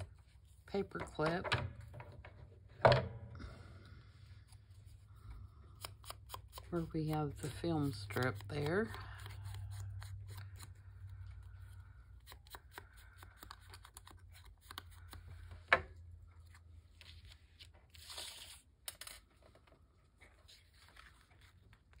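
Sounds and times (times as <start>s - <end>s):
paper rustle: 16.4s - 22.0s.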